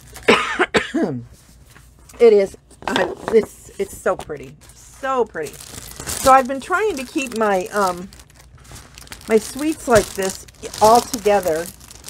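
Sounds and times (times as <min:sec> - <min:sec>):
woman coughing: 0:00.2 - 0:01.2.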